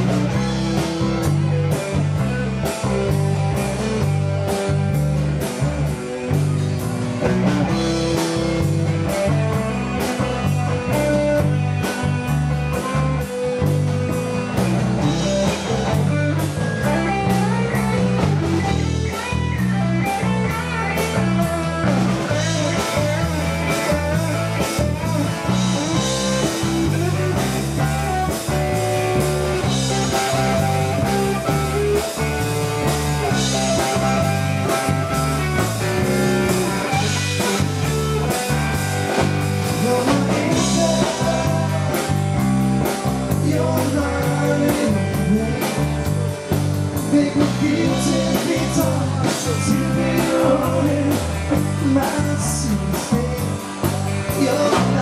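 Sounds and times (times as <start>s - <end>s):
bass line: 0.0s - 55.0s
electric guitars: 0.0s - 55.0s
drum beat: 22.2s - 43.2s.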